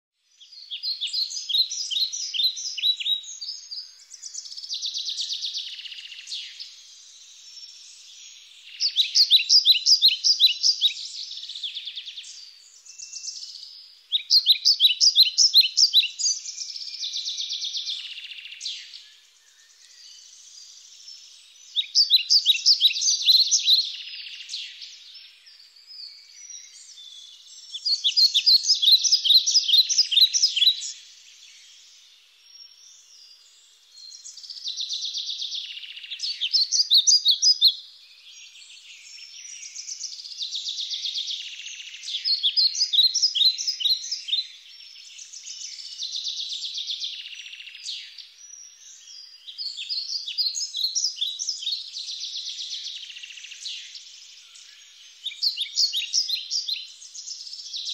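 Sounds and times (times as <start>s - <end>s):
songbird singing: 0.1s - 57.9s.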